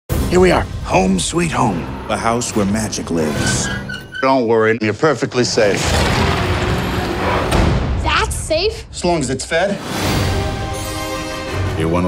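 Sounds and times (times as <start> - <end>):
film trailer score: 0.1 - 12.0.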